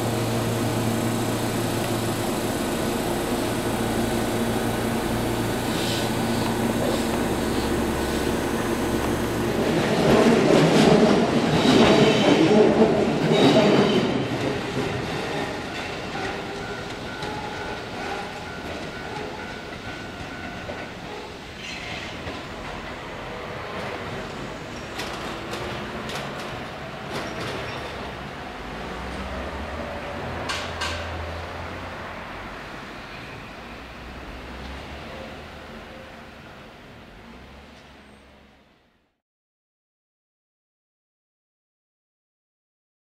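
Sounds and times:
electric train motor hum: 0.0 - 10.2
wheels clattering over rail joints: 23.8 - 29.4.

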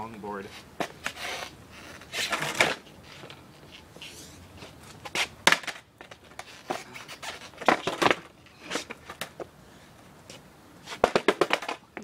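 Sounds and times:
skateboard wheels clattering: 0.5 - 9.5, 10.8 - 12.0
skateboard clacking on ground: 0.8 - 9.5, 10.9 - 12.0.

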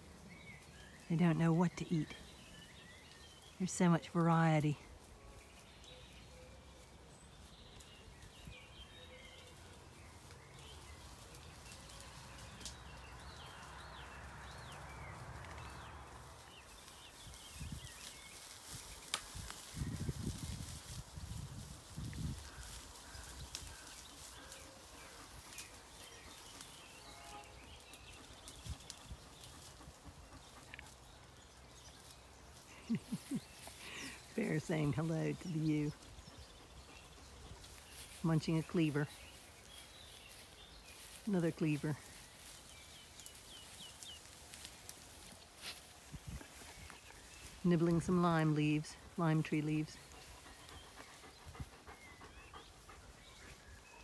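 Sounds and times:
sheep tearing and chewing grass: 9.2 - 54.0.

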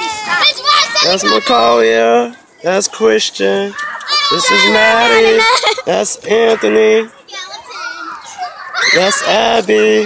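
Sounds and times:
children chattering and calling: 0.0 - 10.0.

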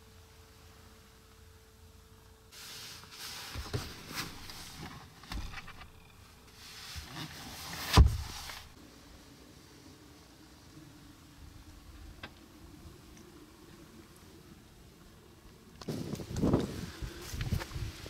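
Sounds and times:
armrest being moved: 2.9 - 5.9, 6.6 - 8.8
loud thump: 7.9 - 8.4.

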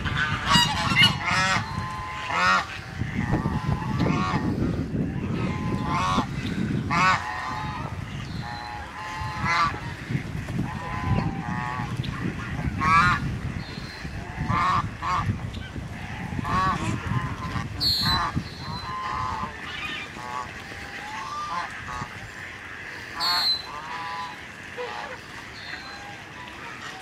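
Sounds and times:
geese honking: 0.0 - 27.0.

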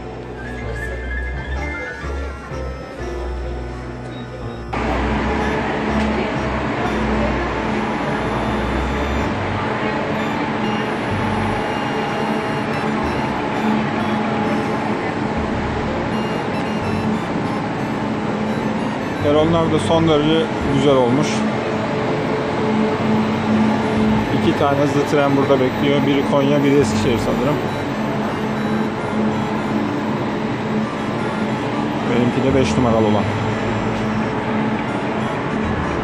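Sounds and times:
constant tones: 0.0 - 36.0
electric trains humming: 0.0 - 36.0.

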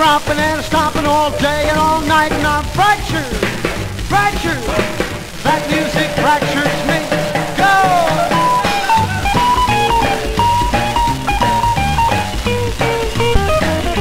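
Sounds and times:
bass and drums: 0.0 - 14.0
rock and roll guitar lead: 0.0 - 14.0.

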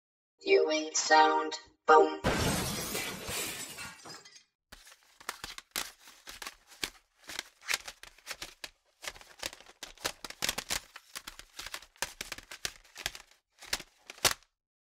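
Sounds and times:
plastic cd cases clacking: 4.8 - 14.5.

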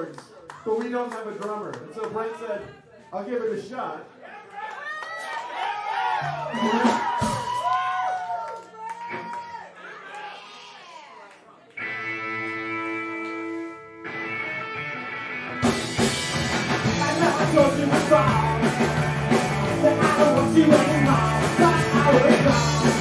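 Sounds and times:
rock band playing: 6.2 - 7.6, 11.8 - 23.0.

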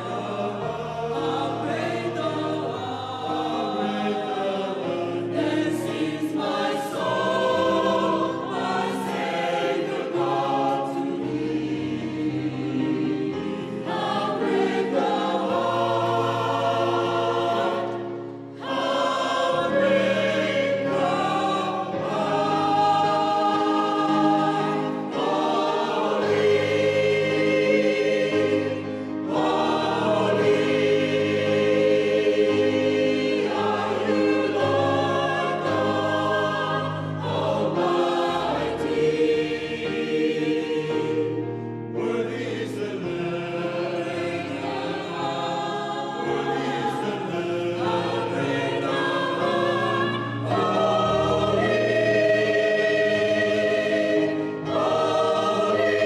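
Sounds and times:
mixed choir singing a carol: 0.0 - 56.0.

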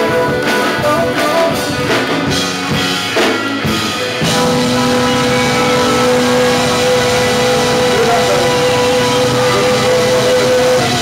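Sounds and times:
punk band playing live: 0.0 - 11.0
long held vocal note: 4.2 - 11.0.

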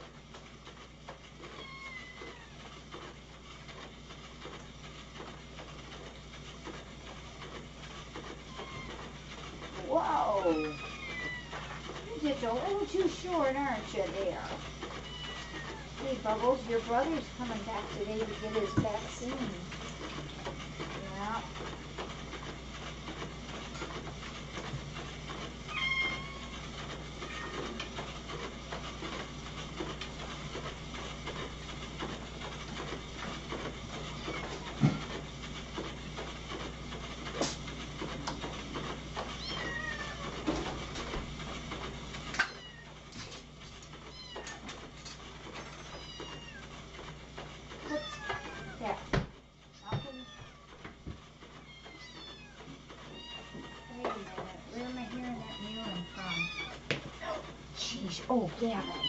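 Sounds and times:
cats meowing: 1.5 - 2.7, 8.5 - 9.1, 10.4 - 11.8, 15.0 - 16.0, 25.7 - 26.5, 39.4 - 40.4, 42.4 - 43.0, 44.1 - 44.7, 45.6 - 46.7, 47.9 - 48.8, 49.7 - 50.8, 51.6 - 57.5, 58.7 - 59.0.

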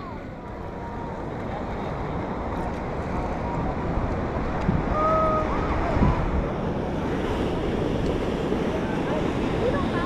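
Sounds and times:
sea surf: 0.0 - 10.0
wind noise on microphone: 0.0 - 10.0.

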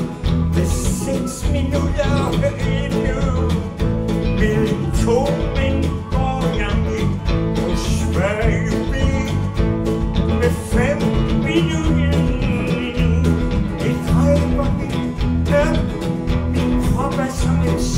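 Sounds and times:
lead guitar bending notes: 0.0 - 17.9
live country-blues band: 0.0 - 17.9.

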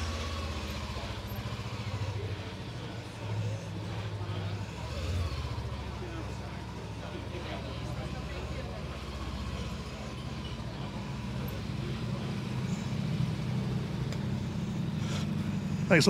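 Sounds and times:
motorcycle engine running at low revs: 0.0 - 16.0.

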